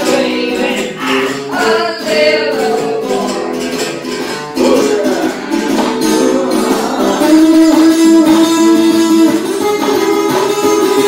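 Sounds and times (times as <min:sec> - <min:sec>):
acoustic guitar blues lead: 0:00.0 - 0:11.0.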